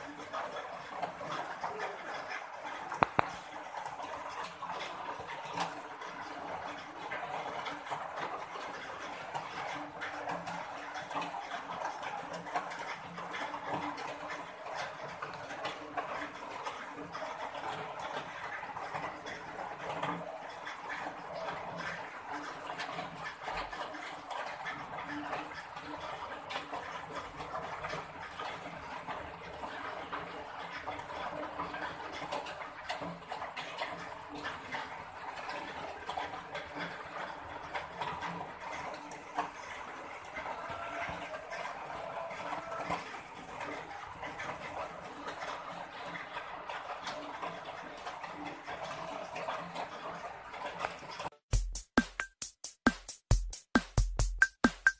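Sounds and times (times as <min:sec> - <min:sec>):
cat chewing clicks and smacks: 0:02.9 - 0:03.4.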